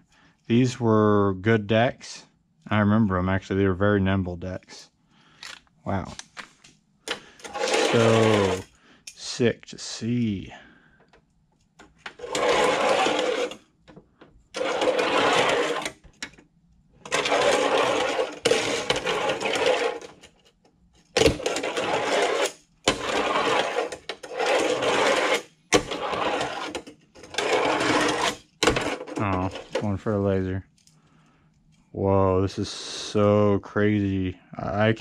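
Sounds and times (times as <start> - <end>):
fingerboard wheels rolling on ramp: 7.5 - 8.6, 12.1 - 13.7, 14.6 - 16.0, 17.0 - 20.2, 21.2 - 29.8.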